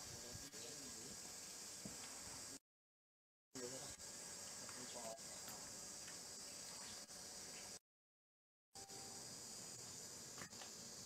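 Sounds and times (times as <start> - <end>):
insects droning: 0.0 - 2.6, 3.6 - 7.8, 8.8 - 11.0.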